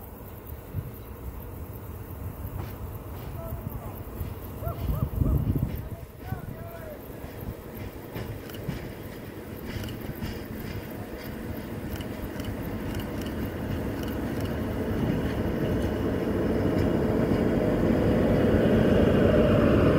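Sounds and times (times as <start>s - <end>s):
diesel locomotive engine rumbling: 0.0s - 19.9s.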